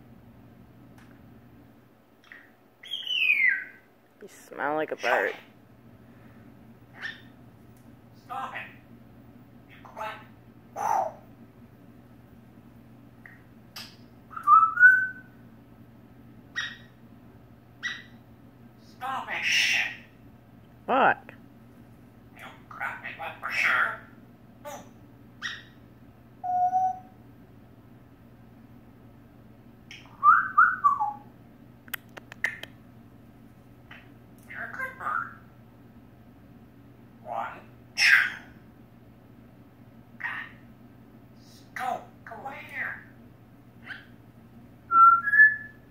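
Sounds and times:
parrot chirps: 2.2s - 3.9s, 6.9s - 7.4s, 9.7s - 11.3s, 13.2s - 15.3s, 16.5s - 17.0s, 17.8s - 18.2s, 19.0s - 20.1s, 22.4s - 25.8s, 26.4s - 27.2s, 29.9s - 31.3s, 33.9s - 35.5s, 37.2s - 38.6s, 40.2s - 40.6s, 43.8s - 44.2s
parrot whistling: 2.8s - 3.8s, 13.8s - 15.3s, 16.6s - 16.9s, 26.4s - 27.2s, 29.9s - 31.3s, 44.9s - 45.8s
harsh parrot call: 19.1s - 20.1s, 37.3s - 38.6s.

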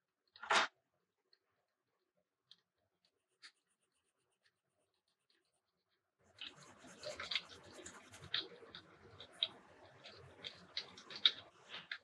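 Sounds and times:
pencil scratching on paper: 3.2s - 5.6s, 6.3s - 11.0s.

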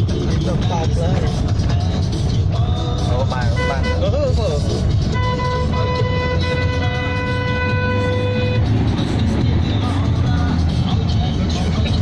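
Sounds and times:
engine and road noise inside car: 0.0s - 12.0s
long vehicle horn note: 5.1s - 8.7s.

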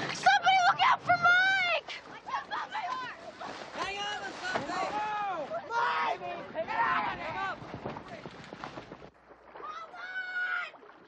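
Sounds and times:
young people shouting and screaming: 0.2s - 7.6s, 9.6s - 10.8s.

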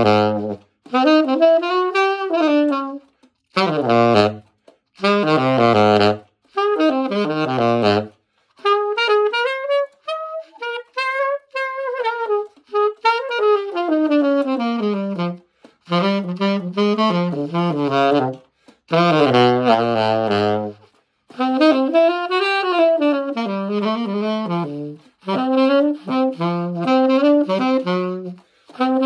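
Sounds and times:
solo tenor saxophone: 0.0s - 29.0s.

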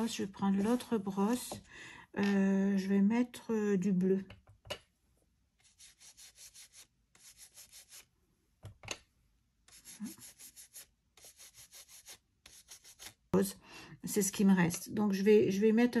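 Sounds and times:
brush rubbing on stencil: 5.6s - 8.1s, 9.7s - 13.2s.

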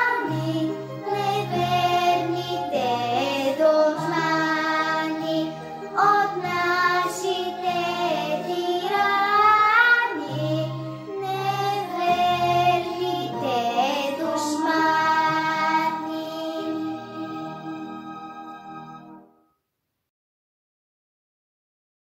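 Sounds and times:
girl singing: 0.0s - 16.8s
instrumental backing track: 0.0s - 19.3s.

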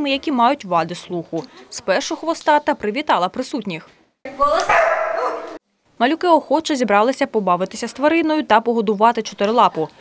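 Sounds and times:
dog drawn-out vocal call: 4.6s - 5.6s.

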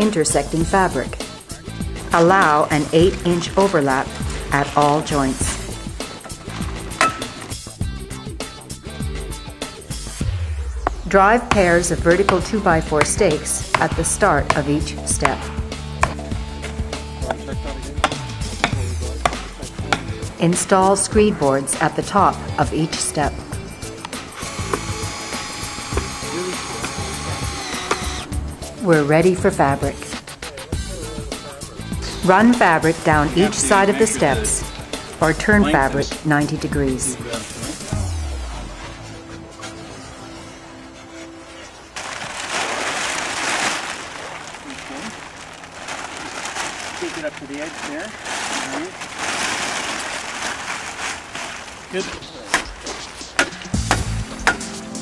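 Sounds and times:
background music: 0.0s - 44.0s, 52.0s - 55.0s
sledgehammer striking wooden stake: 7.0s - 7.4s, 10.8s - 16.2s, 53.4s - 54.6s
fabric sheet rustling: 38.7s - 53.4s.

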